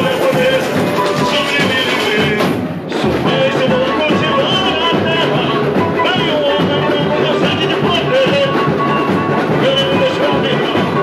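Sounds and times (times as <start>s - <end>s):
lead singer: 0.0s - 11.0s
samba percussion section: 0.0s - 11.0s.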